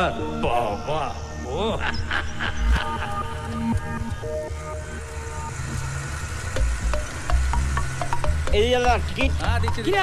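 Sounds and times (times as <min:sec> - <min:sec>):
music of long held notes: 0:00.0 - 0:10.0
moving bus rumble: 0:01.6 - 0:10.0.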